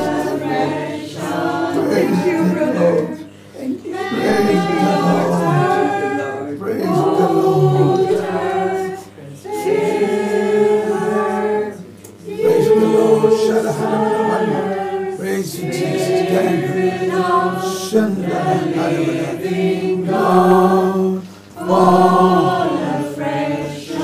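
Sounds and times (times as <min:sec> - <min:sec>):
voices singing unaccompanied: 0:00.0 - 0:24.0.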